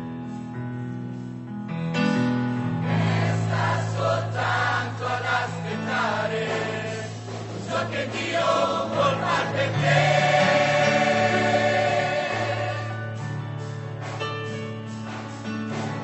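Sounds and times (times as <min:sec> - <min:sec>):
choir singing a hymn: 0:02.6 - 0:13.4.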